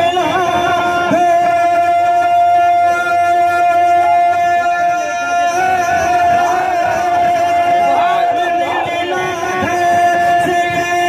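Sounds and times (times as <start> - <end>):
devotional singing over sound system: 0.0 - 11.0.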